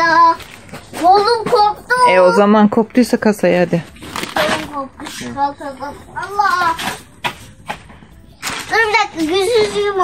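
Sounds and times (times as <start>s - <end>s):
girl speaking: 1.0s - 2.4s, 8.7s - 10.0s.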